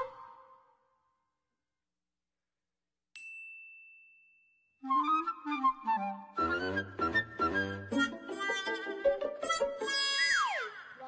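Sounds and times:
flute music: 0:00.0 - 0:00.8, 0:04.8 - 0:11.0
high bell-like ding: 0:03.2 - 0:04.8.

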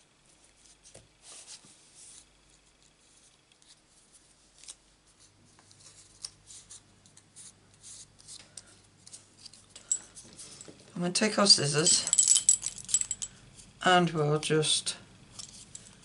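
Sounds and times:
low steady hum: 0:00.0 - 0:16.0
paper rustling on a desk: 0:00.3 - 0:09.6.

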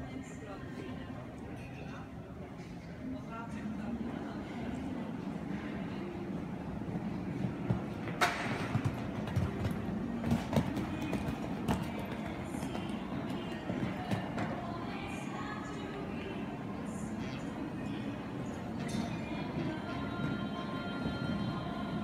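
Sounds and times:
murmur of voices: 0:00.0 - 0:08.0, 0:09.5 - 0:22.0.

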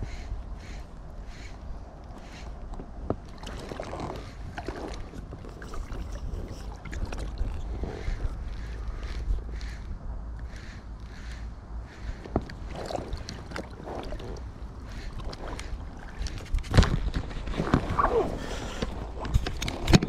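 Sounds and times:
wind on microphone: 0:00.0 - 0:20.0
water lapping against boat: 0:02.2 - 0:09.8, 0:11.9 - 0:20.0.

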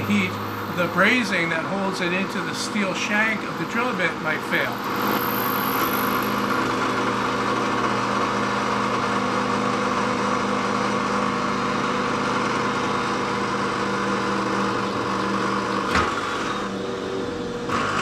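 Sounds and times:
drill bit grinding on steel: 0:00.0 - 0:11.2
drill press motor hum: 0:00.0 - 0:18.0.

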